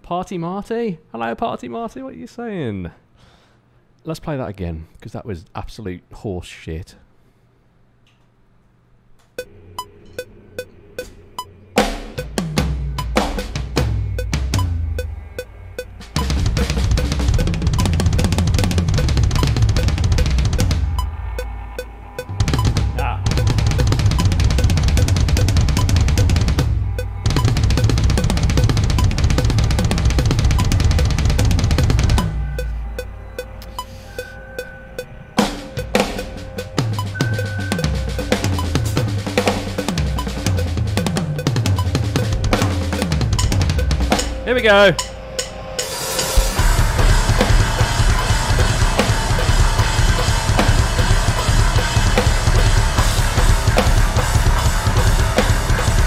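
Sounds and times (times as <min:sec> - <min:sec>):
electronic drum kit played hard: 0:11.0 - 0:56.0
metal backing track with bass: 0:11.0 - 0:56.0.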